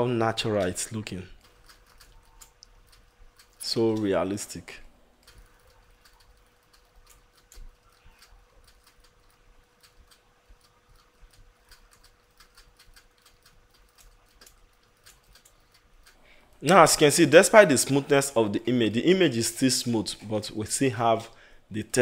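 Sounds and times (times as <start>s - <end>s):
faint steady hum: 0.0s - 22.0s
mouse and keyboard clicking: 0.5s - 4.1s, 5.2s - 16.8s.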